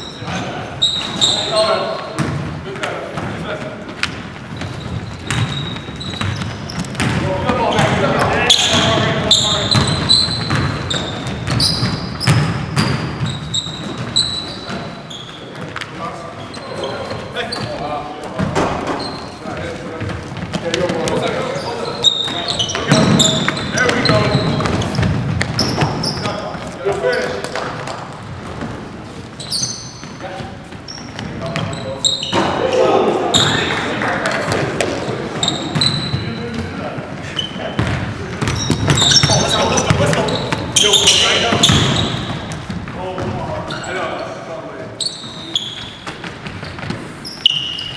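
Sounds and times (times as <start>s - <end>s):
sneakers squeaking: 0.0s - 47.9s
basketball bouncing on hardwood: 4.0s - 8.0s, 9.7s - 13.3s
players shouting: 32.3s - 35.8s.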